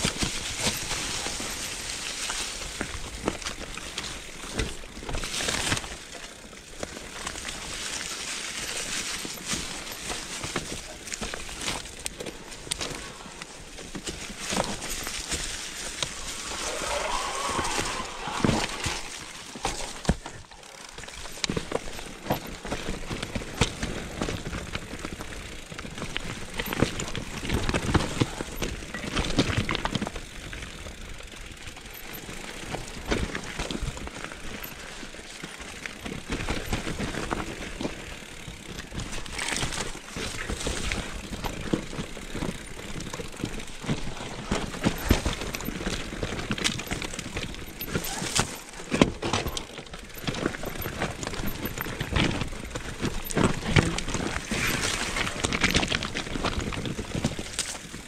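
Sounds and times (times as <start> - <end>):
bike chain and frame rattling: 0.0 - 58.0
tyres crunching over stones: 0.0 - 58.0.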